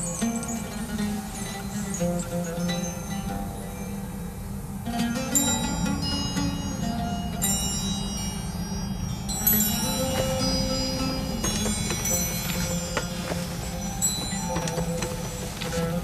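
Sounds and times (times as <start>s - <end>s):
chime-like struck notes: 0.0s - 16.0s
low steady drone: 0.0s - 16.0s.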